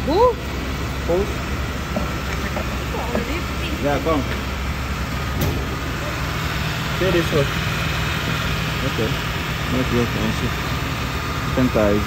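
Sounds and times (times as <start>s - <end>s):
air conditioning running: 0.0s - 12.0s
car engine idling: 0.0s - 12.0s.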